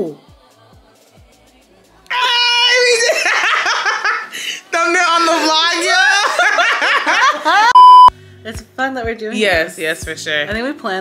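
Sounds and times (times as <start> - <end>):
women shrieking with laughter: 2.1 - 4.3, 5.9 - 7.8.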